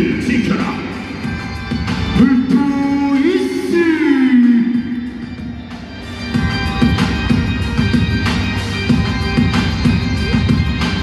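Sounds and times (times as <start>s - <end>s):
stadium music over loudspeakers: 0.0s - 11.0s
steady music beat: 0.0s - 11.0s
announcer calling a name: 2.2s - 5.0s.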